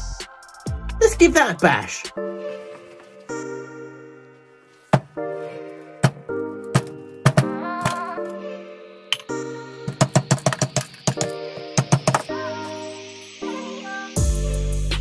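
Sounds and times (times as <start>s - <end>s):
background music with chords: 0.0s - 15.0s
rising hiss: 10.9s - 15.0s.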